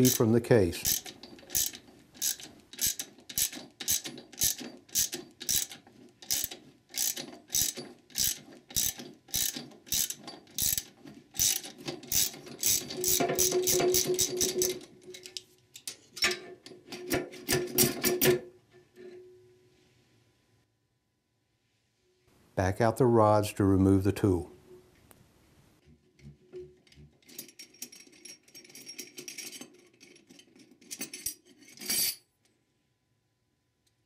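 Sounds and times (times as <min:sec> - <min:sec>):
socket ratchet clicking: 0:00.0 - 0:00.2, 0:00.8 - 0:14.8.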